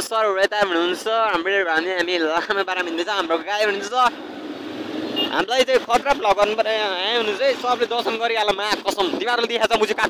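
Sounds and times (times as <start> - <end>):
man's voice: 0.0 - 4.1, 5.3 - 10.0
street traffic: 0.6 - 10.0
brief high tone: 5.2 - 5.4.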